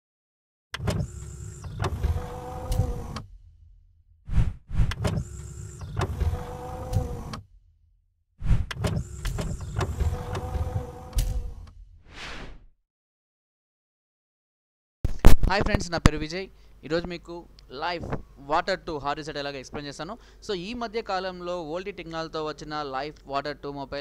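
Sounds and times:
sharp mechanical clicks: 0.8 - 3.3, 4.8 - 7.4, 8.7 - 11.8
whirring sliding motor: 0.8 - 3.5, 4.3 - 7.5, 8.5 - 11.8
short whooshes: 4.3 - 5.0, 8.4 - 8.7, 12.0 - 12.7.

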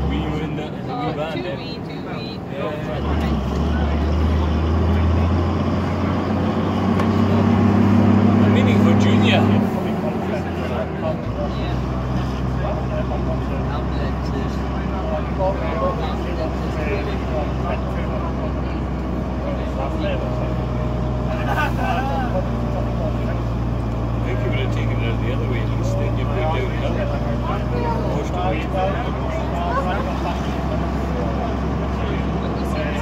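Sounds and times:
bus diesel engine drone: 0.0 - 33.0
passengers chattering: 0.0 - 33.0.

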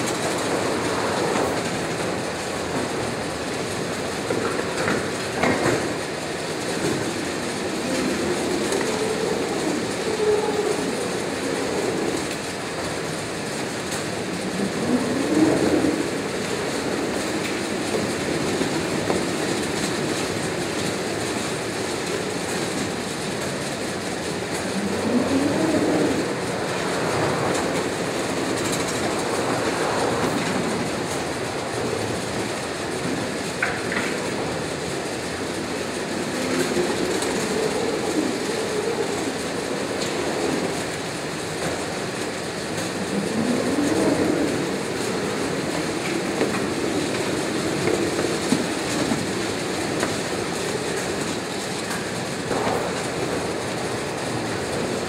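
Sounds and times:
roller conveyor rolling: 0.0 - 55.0.

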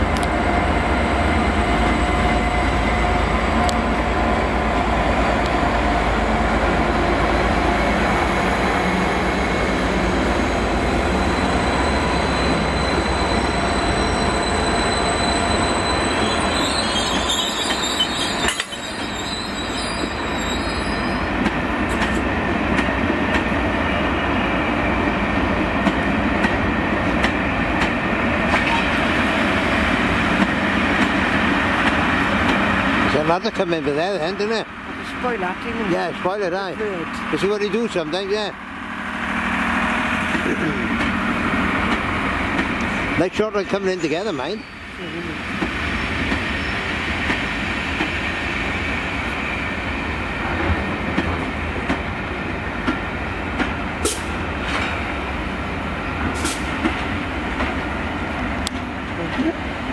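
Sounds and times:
train wheels rolling on rails: 0.0 - 59.9
high wheel squeal: 8.9 - 21.4, 43.8 - 45.0, 46.0 - 46.9.

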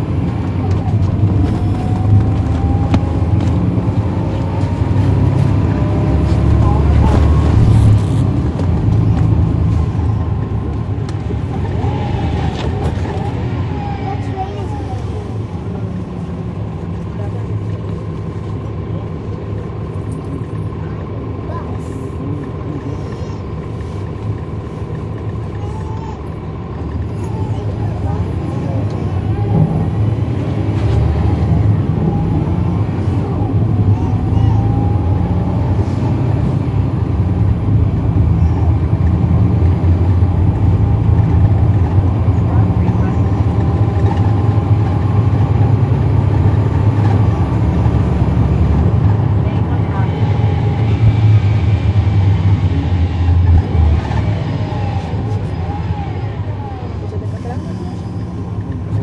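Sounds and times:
bus diesel engine under load: 0.0 - 59.0
faint engine whine: 0.0 - 59.0.

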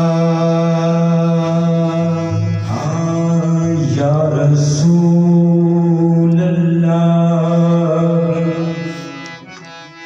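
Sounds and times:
man singing long notes: 0.0 - 9.7
harmonium drone: 0.0 - 10.0.

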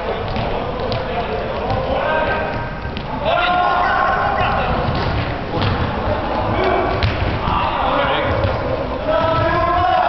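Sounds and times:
ball kick thuds: 0.2 - 3.1, 4.4 - 6.0, 6.7 - 9.6
players shouting in hall: 3.1 - 4.8.

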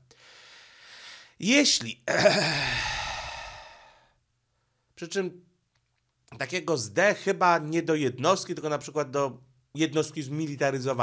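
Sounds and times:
man sighing: 2.1 - 4.1.

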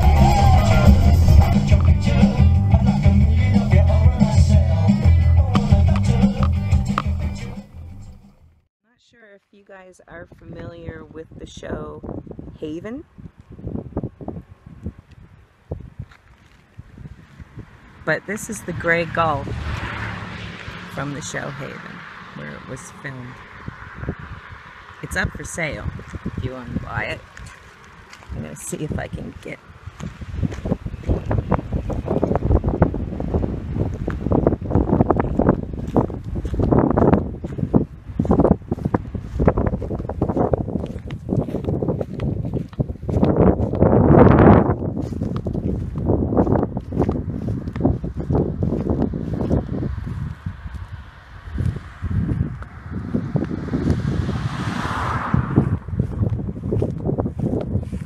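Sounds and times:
wind buffeting microphone: 10.1 - 58.0.

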